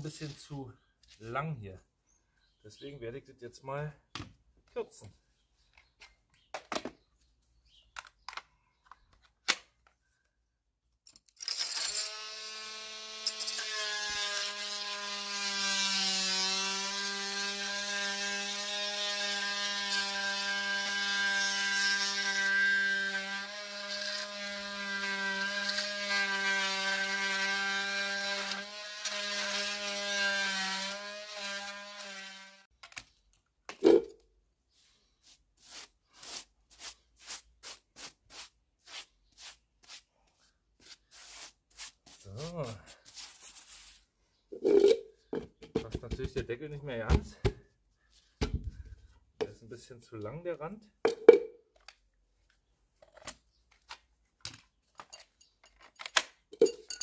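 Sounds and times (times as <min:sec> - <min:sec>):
multi-tool cutting plastic pipe: 0:12.0 - 0:33.0.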